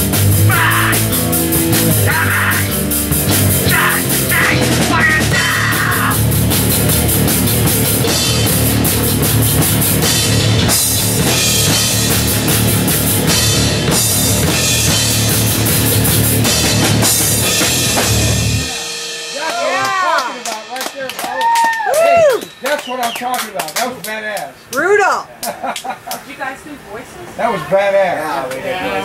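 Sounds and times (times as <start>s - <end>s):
bass guitar: 0.0s - 22.6s
distorted electric guitars: 0.0s - 22.8s
pounding drum kit with cymbals: 0.0s - 23.2s
excited voices: 0.4s - 6.4s, 19.4s - 29.0s.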